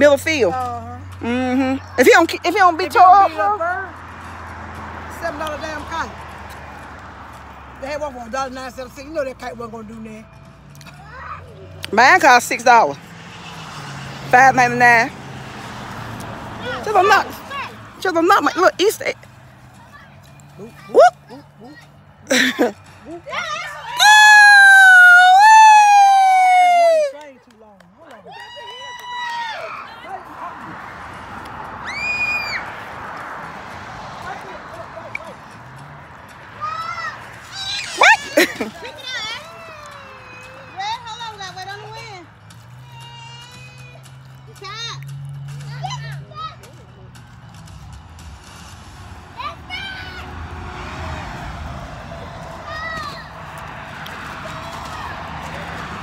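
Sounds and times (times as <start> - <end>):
loud high-pitched yell: 23.4 - 27.2.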